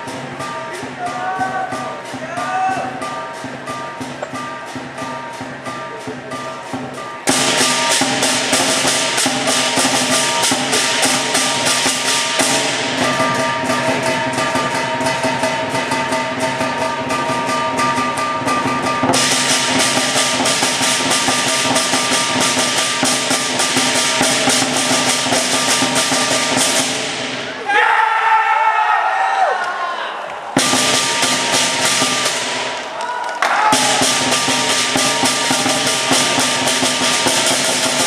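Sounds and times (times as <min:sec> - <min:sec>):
gong ringing: 0:00.0 - 0:27.2
rapid cymbal clashes: 0:00.0 - 0:27.6, 0:30.6 - 0:33.0, 0:33.6 - 0:38.0
drum: 0:00.0 - 0:27.7, 0:30.6 - 0:38.0.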